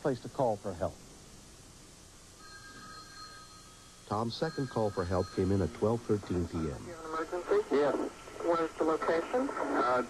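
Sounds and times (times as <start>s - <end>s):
faint background hum: 0.0s - 10.0s
desk telephone ringing: 2.4s - 6.9s.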